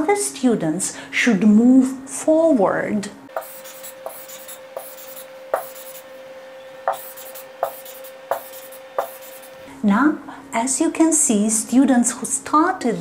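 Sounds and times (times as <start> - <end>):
stylus tapping on whiteboard: 3.4 - 6.0, 6.9 - 9.5
stylus scratchy stroking: 3.4 - 6.1, 6.9 - 9.6.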